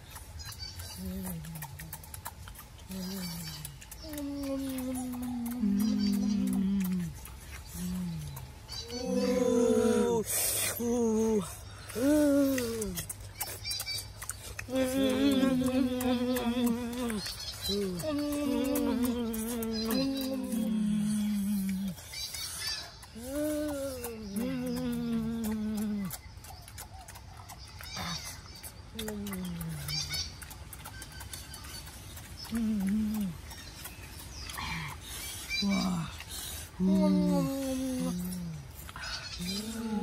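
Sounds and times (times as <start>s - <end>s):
lip smacking and chewing: 0.0s - 40.0s
boys humming while eating: 0.9s - 2.0s, 2.9s - 13.2s, 14.4s - 22.1s, 23.0s - 26.2s, 28.9s - 30.0s, 32.5s - 33.5s, 34.5s - 40.0s.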